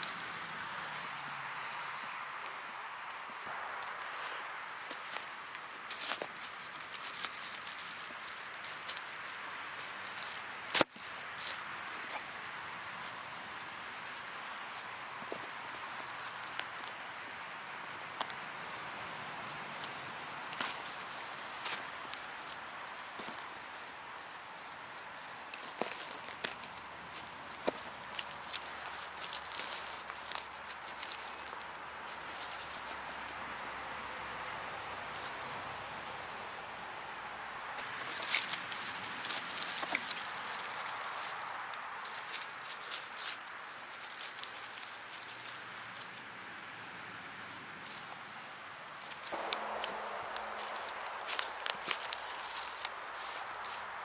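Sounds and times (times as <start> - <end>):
footsteps in dry leaves: 0.0 - 54.0.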